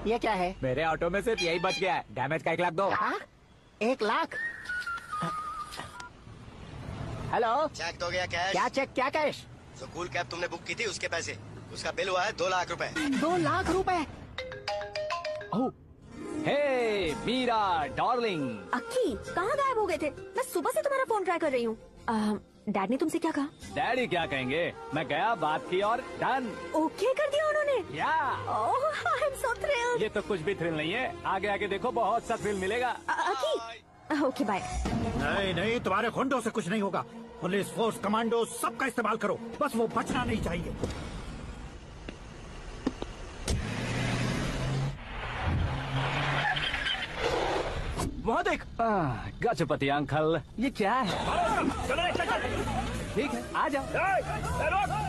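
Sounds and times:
phone ringtone melody: 14.4 - 15.7.

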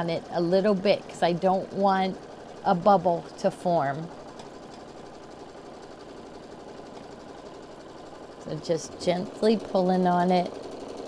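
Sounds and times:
embroidery machine stitching: 0.0 - 11.0.

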